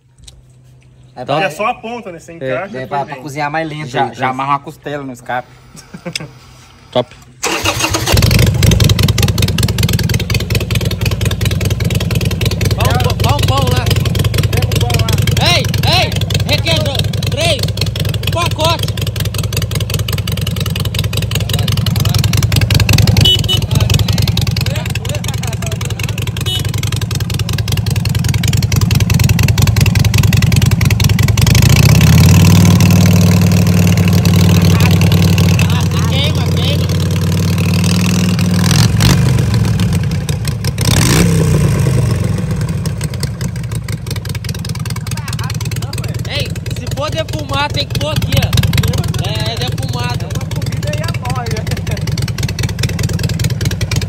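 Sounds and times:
motorcycle engine idling and revving: 7.4s - 54.0s.

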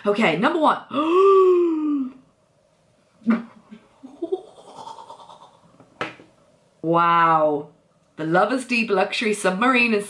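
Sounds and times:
woman giggling: 3.2s - 5.6s.

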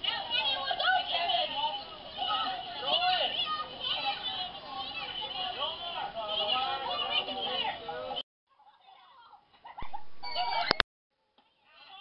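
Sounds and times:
children shouting and chattering: 0.0s - 10.8s.

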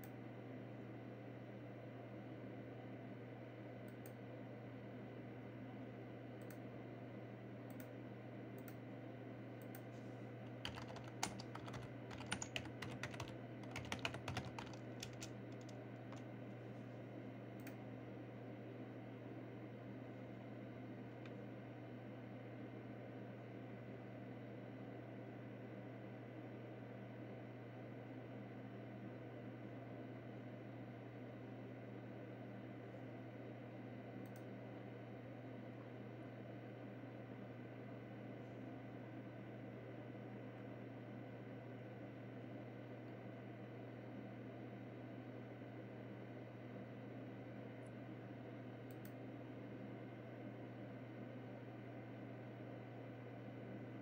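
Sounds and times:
steady low hum: 0.0s - 24.6s
faint click: 3.9s - 4.2s, 6.4s - 6.6s, 7.7s - 7.9s, 8.6s - 8.8s, 9.6s - 9.9s, 17.6s - 17.8s, 34.2s - 34.5s, 48.9s - 49.2s.

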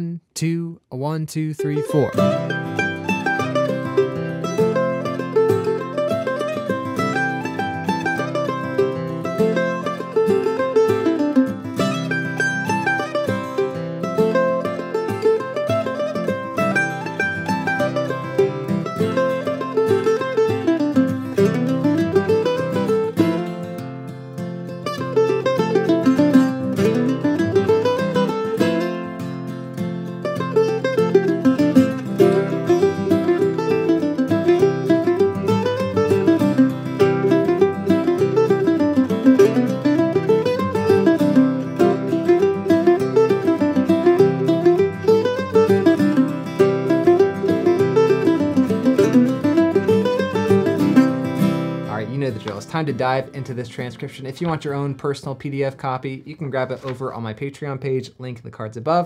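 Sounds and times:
mandolin picking melody: 1.6s - 55.8s.

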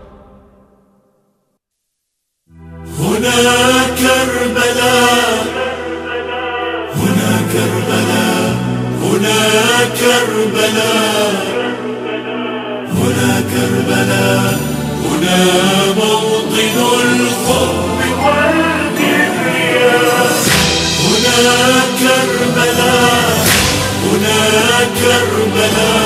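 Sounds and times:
devotional chant singing: 2.8s - 26.0s.

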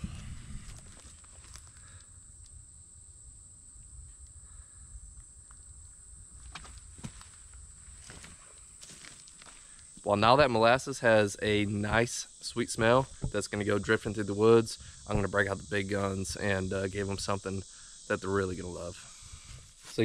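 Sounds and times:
high-pitched insect drone: 7.7s - 20.0s.

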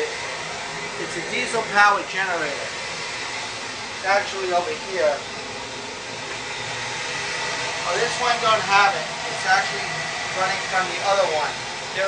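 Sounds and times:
blowers rushing air: 0.0s - 12.0s.

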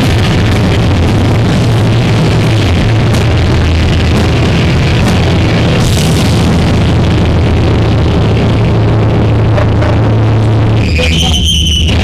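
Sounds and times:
distorted guitar and bass drone: 0.0s - 12.0s
high feedback whine: 0.0s - 12.0s.

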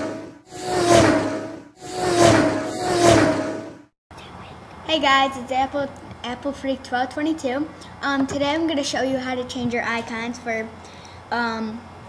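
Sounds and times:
whooshing swell with low hum: 0.0s - 3.9s.

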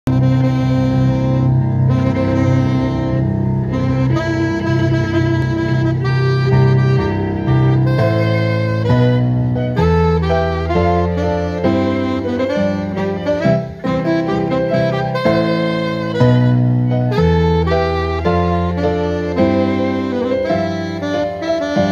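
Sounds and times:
low held bass notes: 0.1s - 21.9s
saxophone playing march: 0.1s - 21.9s
violin: 0.1s - 21.9s.

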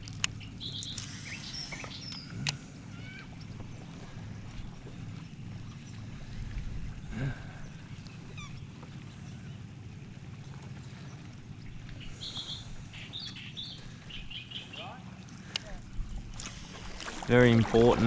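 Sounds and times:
wind and water rumble: 0.0s - 18.0s
bird chirps: 0.4s - 2.4s, 11.0s - 15.0s.

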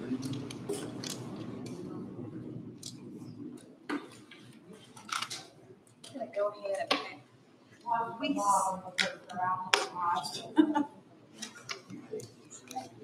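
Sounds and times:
low background talk: 0.0s - 13.0s.

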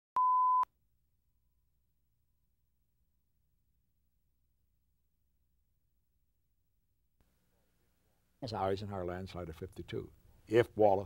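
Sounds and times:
steady test-tone beep: 0.2s - 0.7s.

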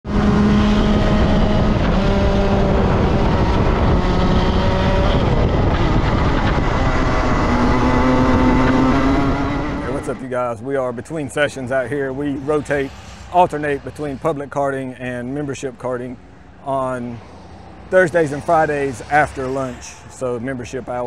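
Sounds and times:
kart engine at high revs: 0.0s - 10.2s
wind and road noise: 0.0s - 21.0s.

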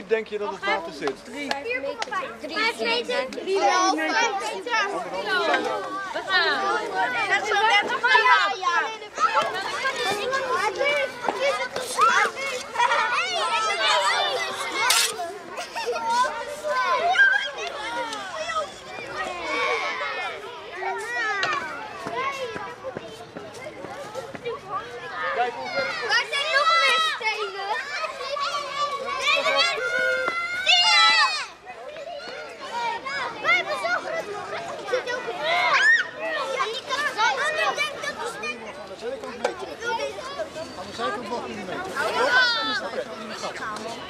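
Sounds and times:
children talking and calling out: 0.0s - 44.0s.

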